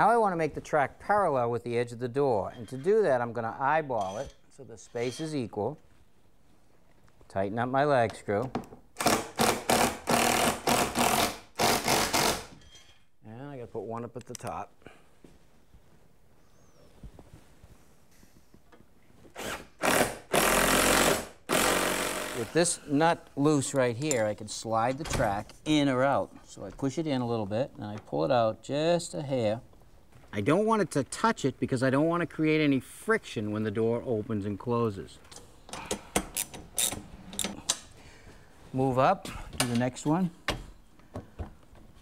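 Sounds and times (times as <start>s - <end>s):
ratchet wrench clicking: 36.3s - 37.6s.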